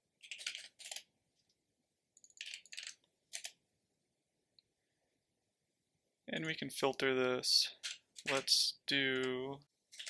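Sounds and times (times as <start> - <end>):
computer keyboard typing: 0.2 - 1.1, 2.2 - 3.6.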